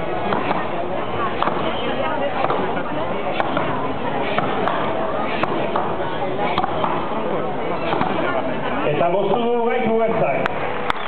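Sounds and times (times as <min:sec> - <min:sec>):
crowd murmur: 0:00.0 - 0:11.0
axe chopping into log: 0:06.6 - 0:07.0.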